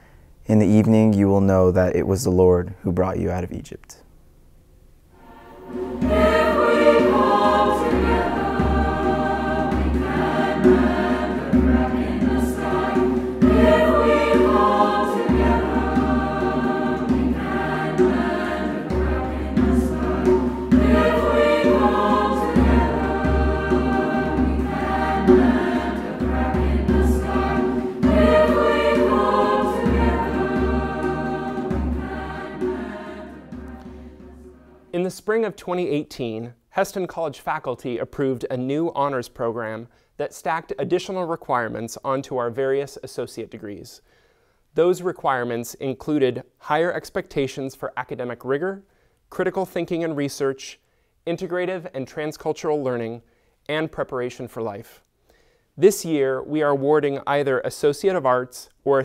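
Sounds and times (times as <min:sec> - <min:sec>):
mixed choir singing in harmony: 0:05.2 - 0:34.9
hand drum beating: 0:05.6 - 0:34.8.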